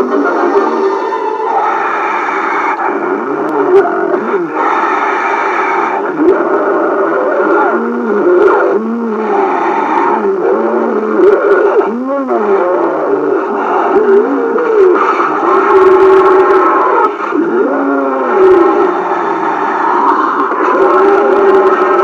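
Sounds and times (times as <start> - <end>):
wavering moaning tones: 0.0 - 22.0.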